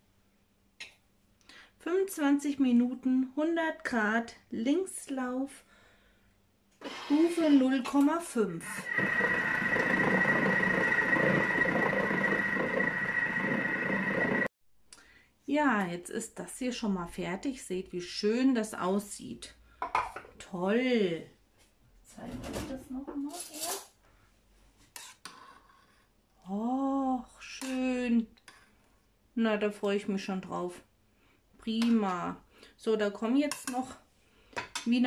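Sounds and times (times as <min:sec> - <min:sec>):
kitchen appliance steady high whine: 0:06.8 - 0:14.5
spoon scraping steel bowl: 0:24.9 - 0:26.1.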